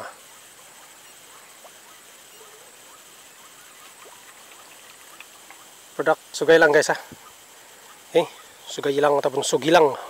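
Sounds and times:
high insect chorus hiss: 0.0s - 10.0s.

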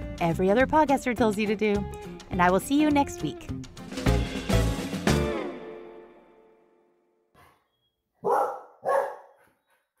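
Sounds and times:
dog barking: 8.2s - 9.6s.

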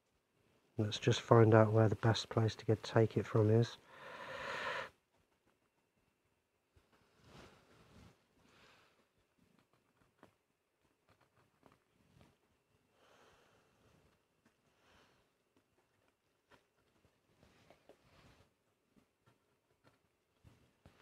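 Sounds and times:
small clicks and rubbing: 5.0s - 12.9s, 13.8s - 21.0s.

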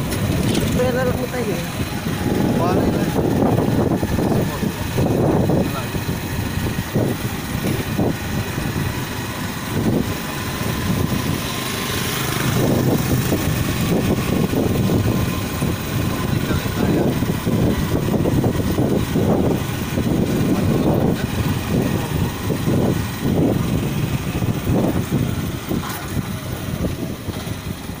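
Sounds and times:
vehicle engine running: 0.0s - 28.0s
wind buffeting microphone: 0.0s - 28.0s.

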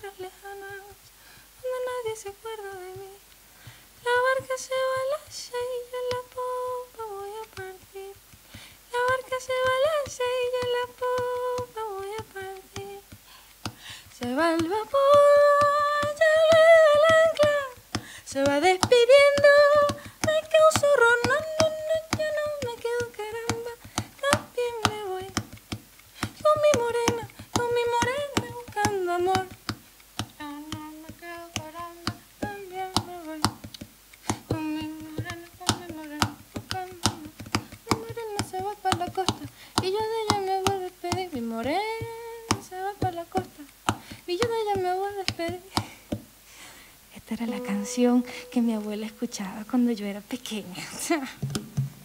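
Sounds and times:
woman humming a melody: 8.9s - 13.1s, 14.1s - 25.6s, 26.4s - 29.6s, 30.4s - 33.8s, 34.4s - 45.7s, 47.3s - 51.4s
percussive taps on guitar body: 14.6s - 46.3s, 51.4s - 52.0s.

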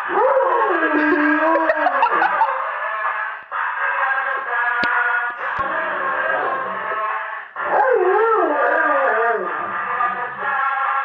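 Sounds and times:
dog howling: 0.0s - 2.6s, 5.4s - 10.6s
song through a megaphone: 1.1s - 11.0s.

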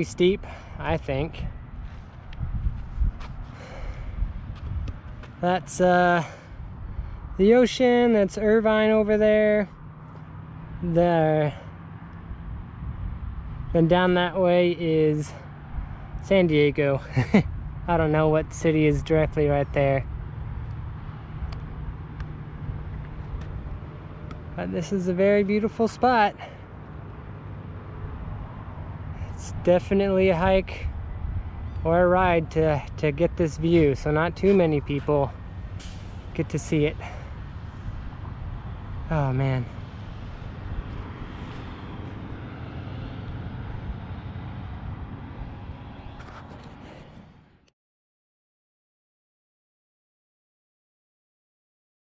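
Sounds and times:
distant road traffic rumble: 0.0s - 47.7s
wind noise on microphone: 1.2s - 5.4s, 12.3s - 13.8s, 30.2s - 36.5s.

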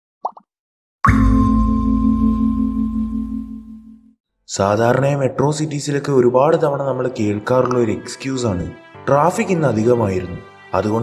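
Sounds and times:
deep ringing tone: 1.1s - 4.2s.

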